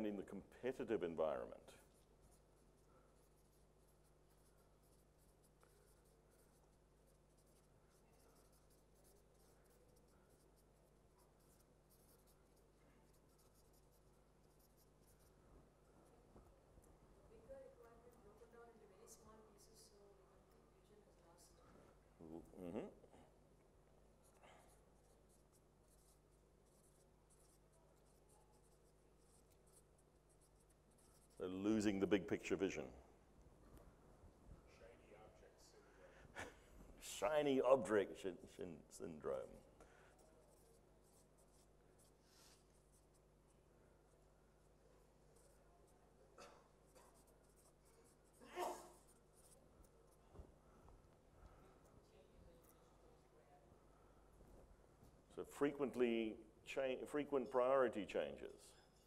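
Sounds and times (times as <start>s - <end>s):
low room hum: 0.0s - 59.0s
marker writing on whiteboard: 1.7s - 16.1s, 24.2s - 31.7s, 40.2s - 45.6s, 46.7s - 50.6s.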